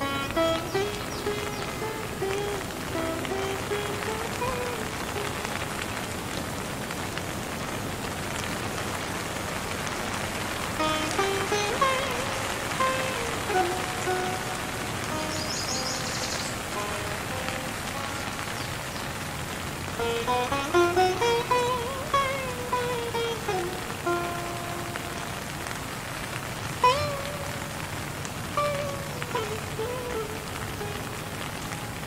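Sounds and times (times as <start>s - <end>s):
plucked string music: 0.0s - 6.0s, 10.6s - 32.0s
steady rain: 0.0s - 32.0s.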